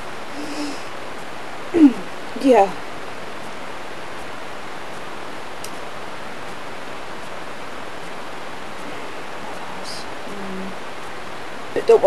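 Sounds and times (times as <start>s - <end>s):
recording noise hiss: 0.0s - 12.0s.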